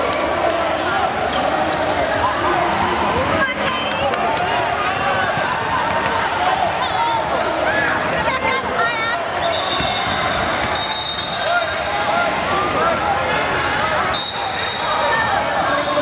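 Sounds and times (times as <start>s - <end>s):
voices around court: 0.0s - 16.0s
sneakers squeaking: 1.1s - 2.8s, 9.4s - 16.0s.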